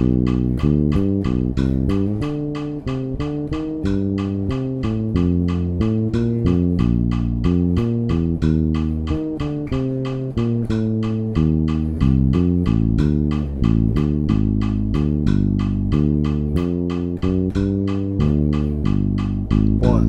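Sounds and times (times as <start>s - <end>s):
electric bass guitar line: 0.0s - 20.0s
metronome click: 0.0s - 20.0s.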